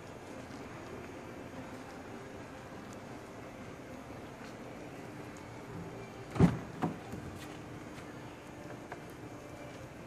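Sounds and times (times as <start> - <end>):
car door latch clunk: 6.3 - 7.0.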